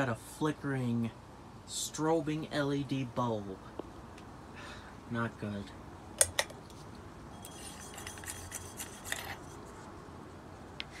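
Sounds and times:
bulb scraping in socket: 7.4 - 9.5.

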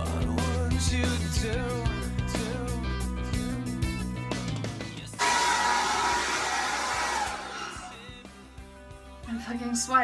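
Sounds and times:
rock music: 0.0 - 10.0
hair dryer blowing: 5.2 - 8.0.

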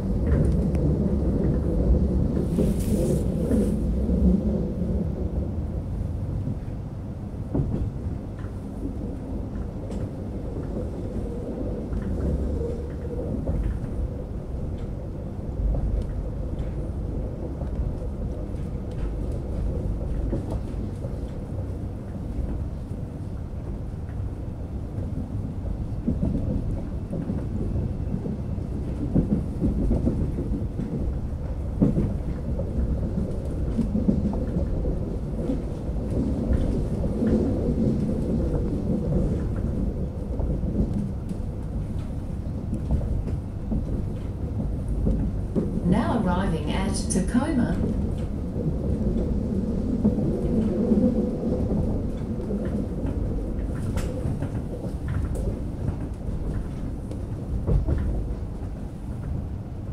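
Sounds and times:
electric train rumbling: 0.0 - 59.9.

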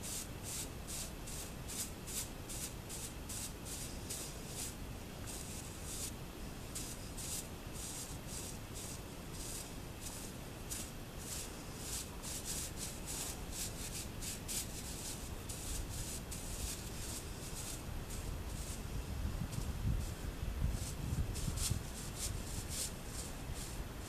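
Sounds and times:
broom brushing horse's coat: 0.0 - 18.9, 19.6 - 24.0.

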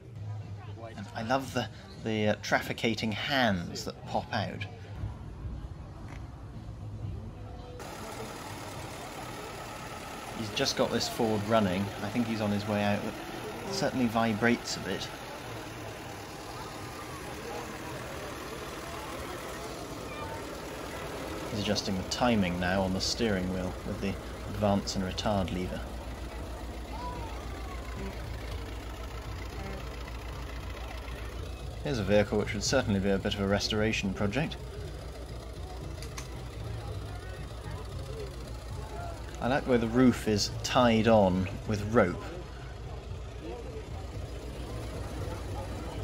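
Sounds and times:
car engine idling: 4.8 - 46.0.

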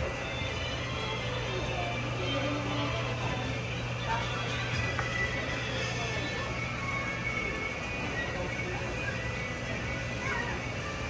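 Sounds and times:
faint music: 0.0 - 11.0
low machinery hum: 0.0 - 11.0
voices: 0.0 - 11.0.

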